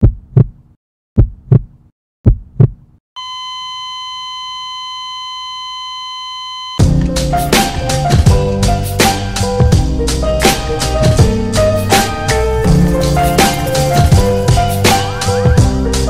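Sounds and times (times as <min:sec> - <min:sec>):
heartbeat thumps: 0:00.0 - 0:02.9
steady electronic beep tone: 0:03.2 - 0:06.8
drum-driven music: 0:06.8 - 0:16.0.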